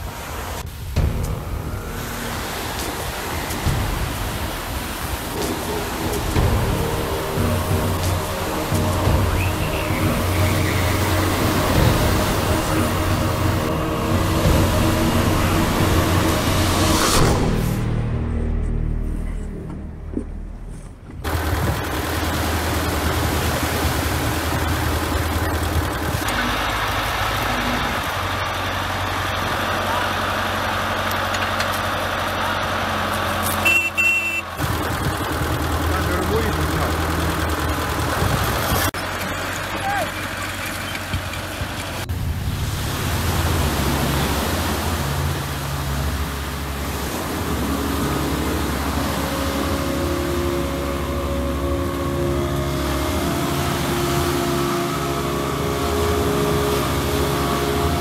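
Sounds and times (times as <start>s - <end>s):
engine running: 0.3s - 58.0s.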